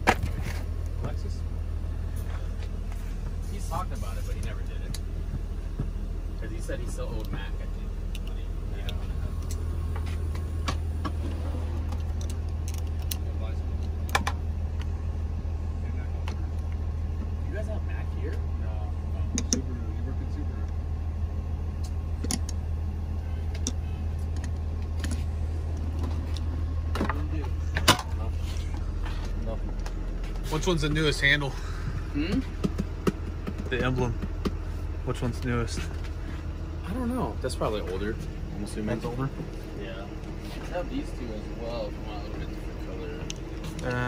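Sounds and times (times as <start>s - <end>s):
low mechanical hum: 0.0s - 44.0s.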